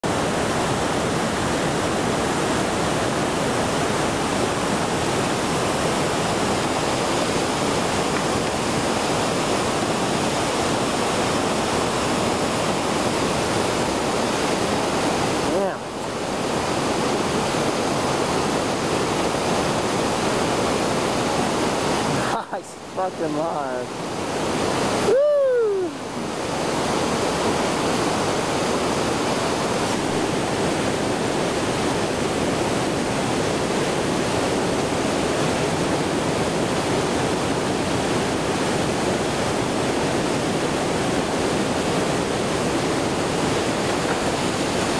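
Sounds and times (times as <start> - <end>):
waterfall rushing: 0.0 - 44.9.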